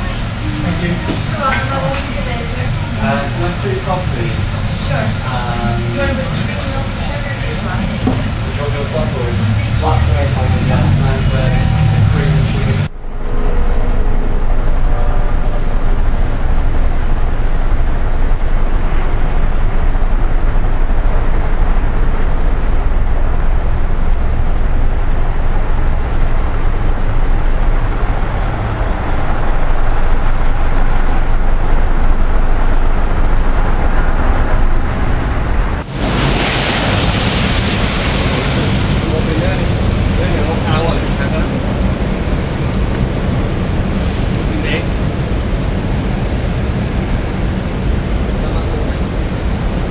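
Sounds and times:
indistinct voices: 0.0 - 23.8, 24.6 - 45.0
traffic rumble: 0.0 - 49.9.

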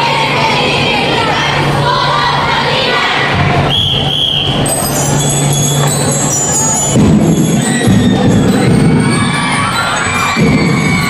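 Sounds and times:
crowd cheering and shouting: 0.0 - 11.0
drum and lyre band playing: 4.6 - 11.0.

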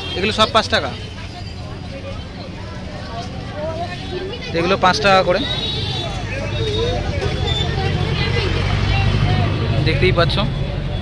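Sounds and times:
crowd chattering: 0.0 - 11.0
vehicle engine rumbling: 0.0 - 11.0.

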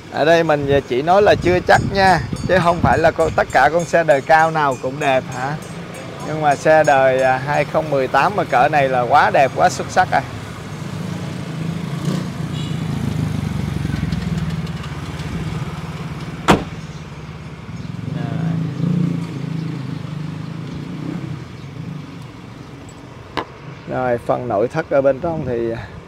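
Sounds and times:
passing motor vehicles rumble: 0.0 - 26.0.

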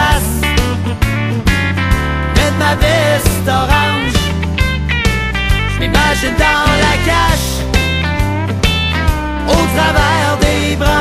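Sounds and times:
song with guitar and bass: 0.0 - 11.0
steady drum beat: 0.1 - 11.0.

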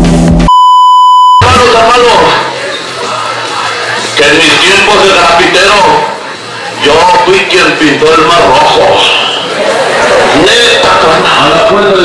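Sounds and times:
music: 0.0 - 0.5, 1.4 - 9.1
electronic censor bleep: 0.4 - 1.6
outdoor crowd noise: 1.1 - 12.0.

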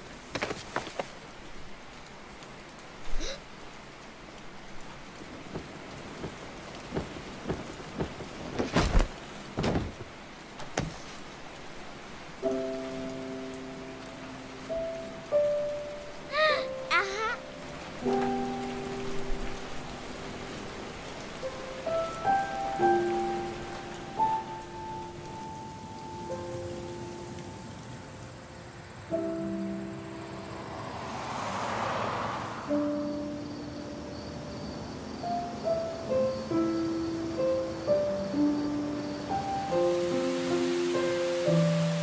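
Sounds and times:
steady hiss: 0.0 - 30.1, 32.7 - 42.0
steady rain falling: 0.0 - 42.0
dull low thuds: 5.3 - 10.9
soft music of held notes: 12.2 - 30.4, 33.0 - 42.0.

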